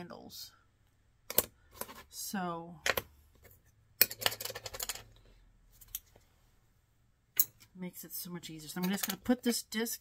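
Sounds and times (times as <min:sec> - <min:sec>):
metal discs clicking and rattling: 0:04.0 - 0:05.2.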